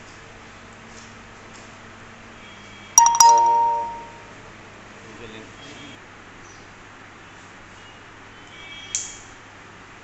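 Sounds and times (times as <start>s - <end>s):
ringing metallic strikes: 3.0s - 4.3s.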